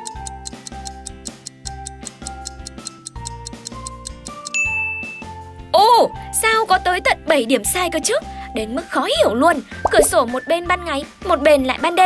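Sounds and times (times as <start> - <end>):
clock-like ticking: 0.0 - 4.6
high ding: 4.5 - 5.3
pulsing bass: 9.8 - 10.2.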